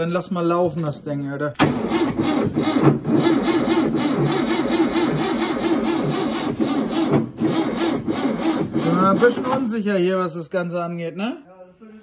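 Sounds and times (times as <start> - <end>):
car engine cranking on starter: 1.6 - 8.7.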